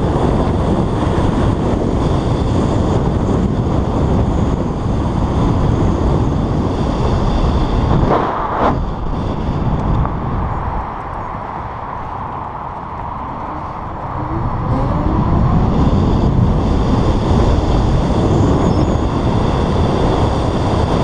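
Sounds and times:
road and traffic noise: 0.0s - 21.0s
wind buffeting microphone: 0.0s - 21.0s
whoosh: 7.8s - 9.6s.

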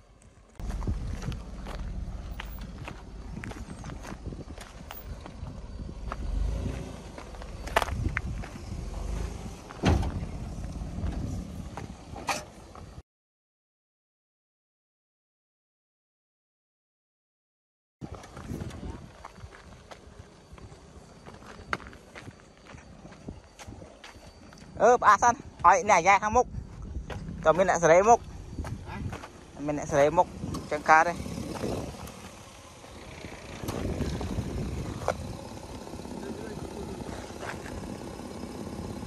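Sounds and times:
vehicle rumbling on dirt: 0.0s - 13.0s, 18.0s - 39.0s
low rumble: 0.3s - 12.2s.

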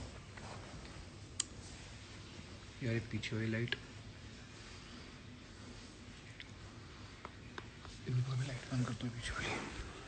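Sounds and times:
man speaking: 8.0s - 9.8s.

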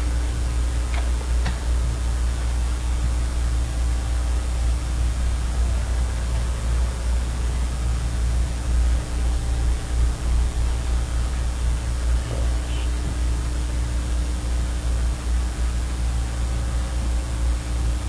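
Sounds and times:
low hum: 0.0s - 18.0s
even hiss: 10.6s - 13.5s.

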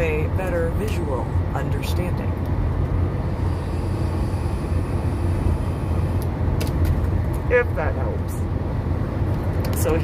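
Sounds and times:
car road rumble: 0.0s - 10.0s.

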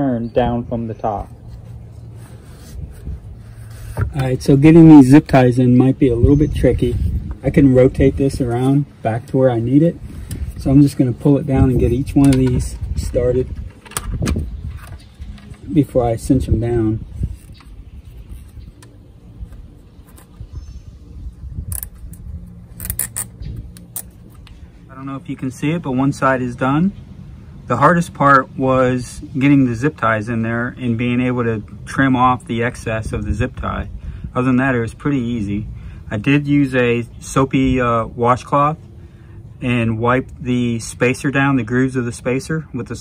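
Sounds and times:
wind rumble on microphone: 0.4s - 24.9s, 31.8s - 36.0s
rubber part rubbing by hand: 1.4s - 4.6s
zip ties clicking: 21.7s - 22.2s, 22.8s - 24.1s.

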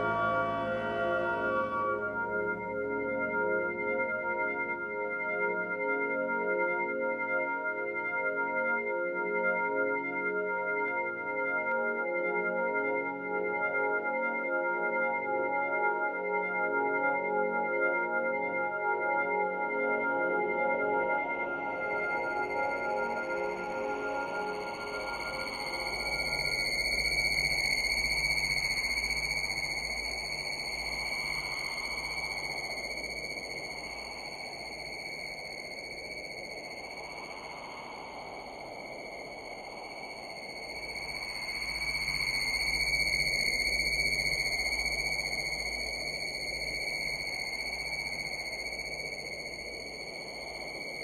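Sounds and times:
low drone: 0.0s - 3.8s, 21.6s - 51.0s
high sonar-like tone: 0.0s - 51.0s.

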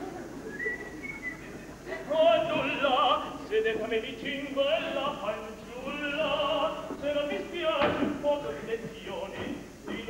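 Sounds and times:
faint stage noise: 0.0s - 10.0s.

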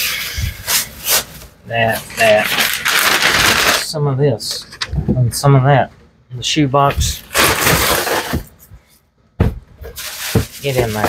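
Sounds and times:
newspaper rustling and crinkling: 1.0s - 3.9s, 10.0s - 11.0s
knock on cardboard box: 9.4s - 9.7s.

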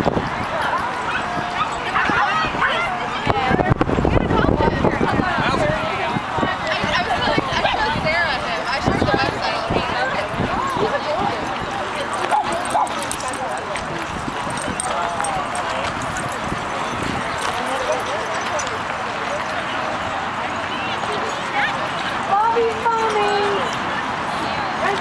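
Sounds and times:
crowd chatter: 0.0s - 25.0s
dogs barking: 12.1s - 13.6s.

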